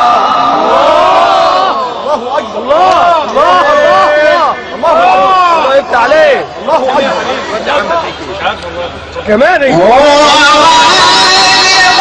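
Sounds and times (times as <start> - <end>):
men calling out: 0.0 - 8.2, 9.6 - 12.0.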